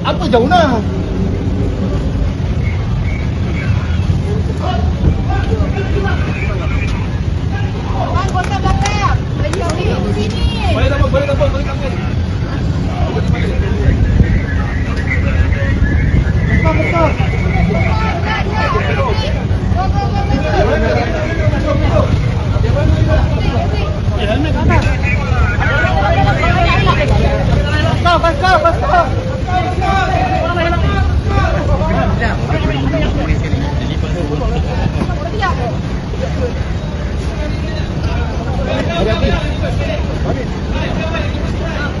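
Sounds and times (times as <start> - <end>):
group of people talking: 0.0 - 42.0
steady low rumble: 0.0 - 42.0.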